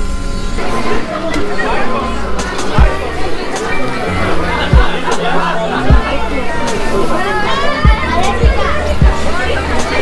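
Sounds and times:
crowd talking: 0:00.0 - 0:10.0
children's voices: 0:00.8 - 0:10.0
background music with low beat: 0:02.4 - 0:07.0, 0:07.8 - 0:10.0.

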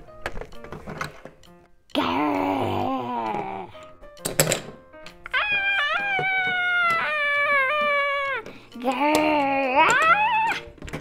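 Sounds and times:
person crying out: 0:01.9 - 0:03.8, 0:05.3 - 0:10.7.

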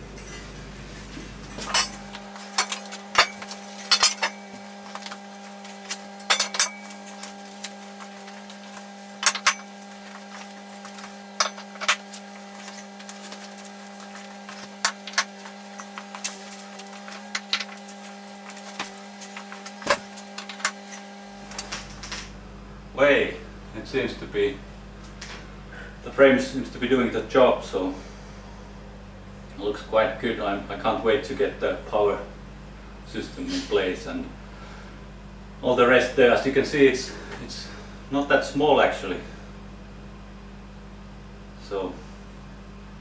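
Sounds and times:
steady hum: 0:00.0 - 0:43.0
metallic clinks and knocks: 0:01.6 - 0:07.4, 0:09.2 - 0:09.8.

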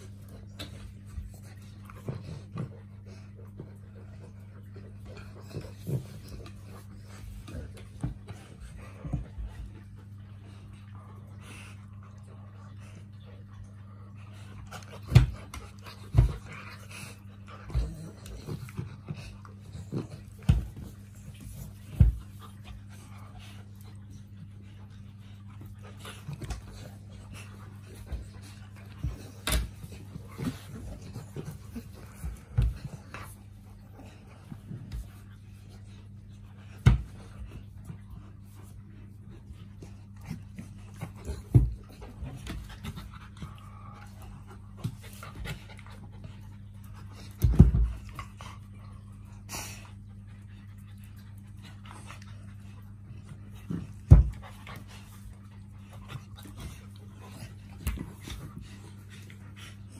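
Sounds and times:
dogs panting and scuffling: 0:00.0 - 0:59.9
steady low hum: 0:00.0 - 0:59.9.

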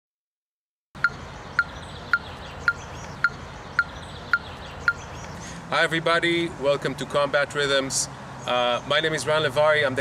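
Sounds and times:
metronome ticking: 0:01.0 - 0:05.4.

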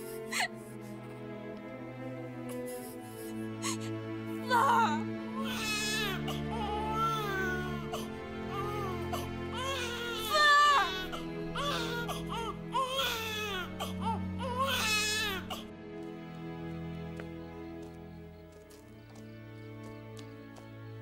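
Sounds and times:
slow background music: 0:00.0 - 0:21.0
woman sobbing: 0:04.4 - 0:05.1
infant crying: 0:04.4 - 0:15.7.

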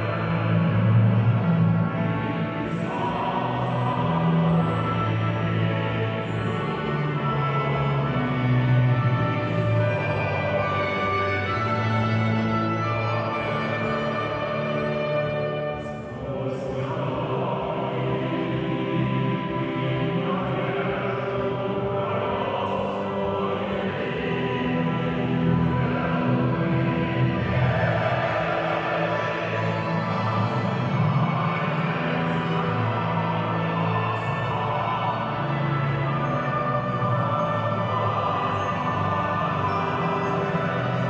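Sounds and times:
orchestral anthem with held chords: 0:00.0 - 0:41.0.

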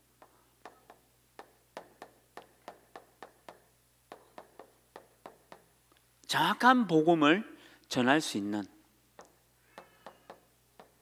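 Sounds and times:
chalk tapping on chalkboard: 0:00.2 - 0:05.7, 0:09.2 - 0:11.0.

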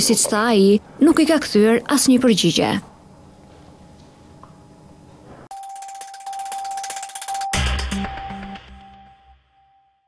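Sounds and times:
news jingle chime: 0:05.5 - 0:09.3.

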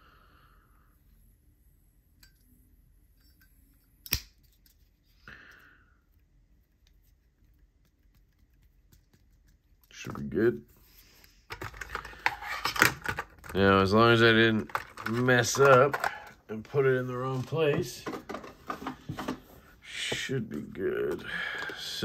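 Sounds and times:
objects clattering: 0:11.5 - 0:19.7.

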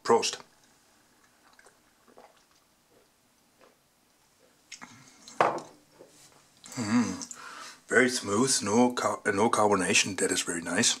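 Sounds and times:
person sipping and swallowing: 0:00.6 - 0:03.8, 0:04.4 - 0:05.4, 0:06.6 - 0:07.5
glass mug set down on table: 0:05.4 - 0:05.8.

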